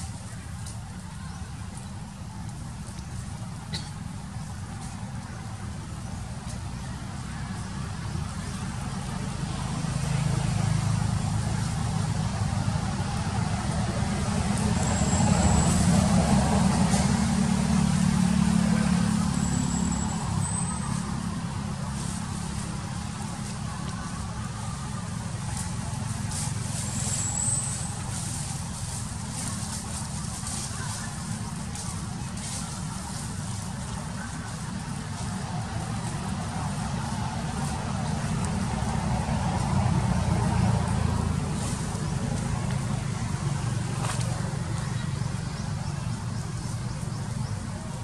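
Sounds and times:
vehicle engine rumbling: 0.0s - 48.0s.

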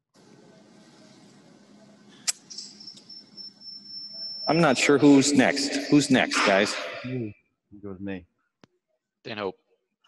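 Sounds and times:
high-pitched electronic whine: 2.5s - 7.3s.

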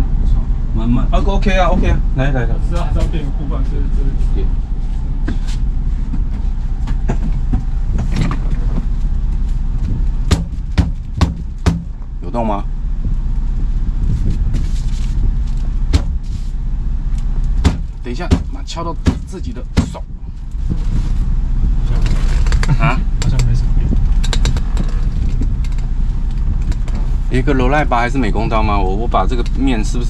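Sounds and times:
steady low hum: 0.0s - 30.0s
sharp knocks on steering wheel: 10.3s - 12.0s, 15.9s - 16.3s, 17.6s - 20.1s.

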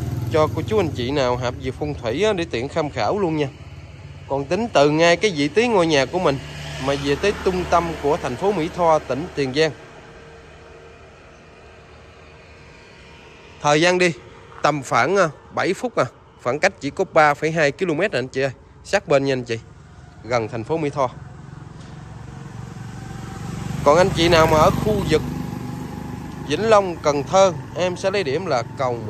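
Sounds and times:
motorcycle engine hum: 0.0s - 29.0s.

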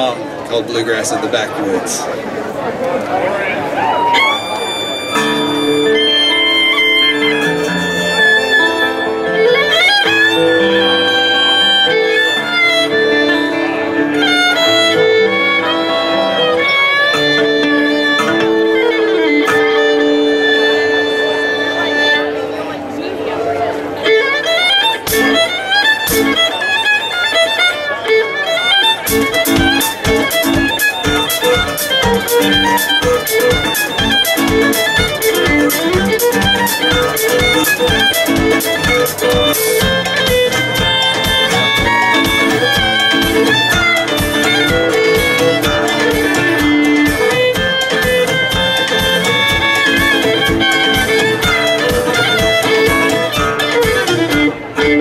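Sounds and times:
fiddle melody: 0.0s - 55.0s
acoustic guitar: 1.8s - 55.0s
drum kit fast beat: 29.1s - 54.0s.

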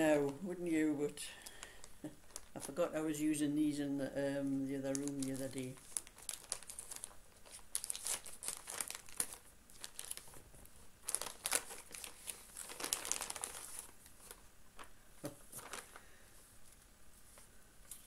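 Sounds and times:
packaging crinkling and tearing: 1.4s - 2.8s, 4.8s - 16.1s.

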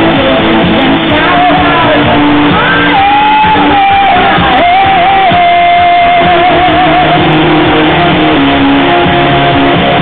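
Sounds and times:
distorted live rock band: 0.0s - 10.0s
electric guitar: 0.0s - 10.0s.

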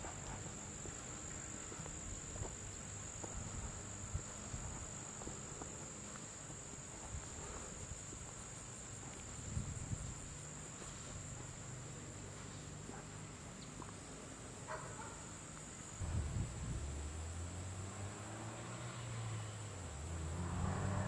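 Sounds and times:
high-pitched insect chorus buzzing: 0.0s - 12.5s
faint low rumble: 15.9s - 17.9s.

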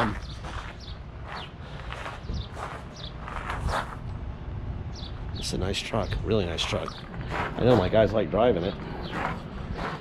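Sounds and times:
footsteps crunching on gravel: 0.0s - 4.1s, 6.5s - 10.0s.

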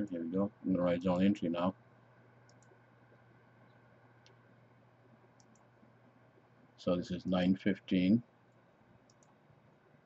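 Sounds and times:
faint low hum: 0.0s - 10.0s
faint computer mouse clicks: 2.4s - 2.8s, 3.7s - 4.4s, 5.4s - 5.7s, 8.5s - 9.4s.

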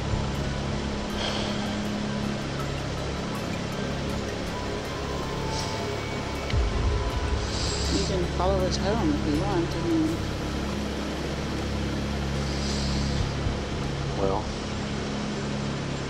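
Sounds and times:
low drone: 0.0s - 16.0s
low rumble: 0.0s - 16.0s
roadside noise hiss: 0.0s - 16.0s
soft background music: 0.0s - 16.0s.

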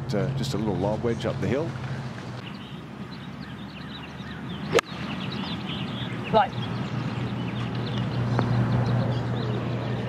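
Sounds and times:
small birds chirping: 0.5s - 10.0s
golf club striking ball: 4.7s - 5.0s.

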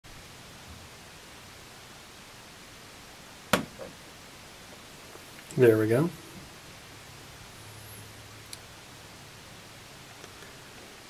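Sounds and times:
faint hiss: 0.1s - 11.0s
soft knock: 3.5s - 4.0s.

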